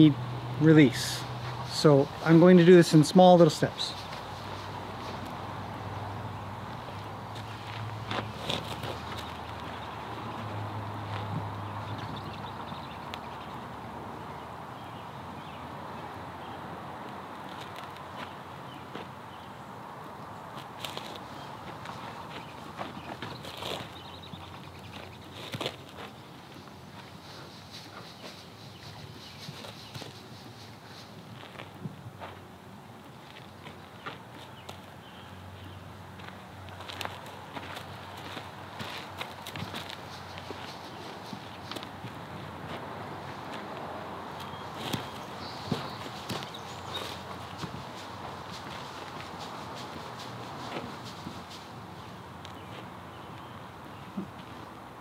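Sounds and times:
person footsteps on gravel: 3.9 - 12.9, 20.6 - 34.9, 36.1 - 54.6
horse footsteps on gravel: 6.7 - 13.5, 20.6 - 32.4, 36.2 - 54.6.

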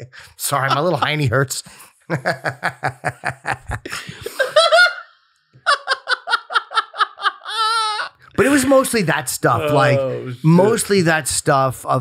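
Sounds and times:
men laughing hard: 0.5 - 1.3, 2.1 - 8.8.

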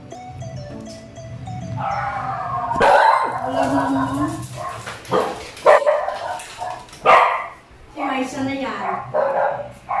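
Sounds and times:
dog barking: 2.8 - 3.5, 4.6 - 7.6, 8.9 - 10.0.

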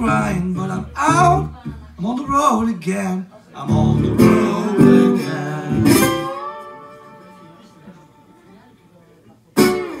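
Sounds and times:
acoustic guitar blues: 0.0 - 8.3, 9.6 - 10.0.

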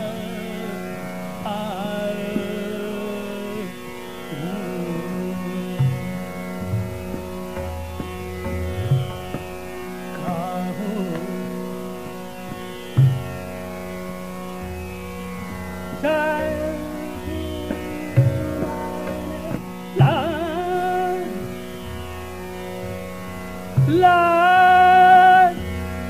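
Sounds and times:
singer's ornamented vocal: 0.0 - 6.3, 10.1 - 12.2, 15.9 - 22.0, 23.8 - 26.0
tanpura drone: 0.0 - 26.0
tabla strokes: 5.8 - 26.0.

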